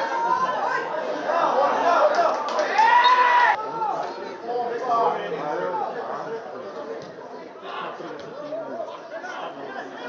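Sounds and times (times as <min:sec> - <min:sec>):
shouting and chatter: 0:00.0 - 0:10.0.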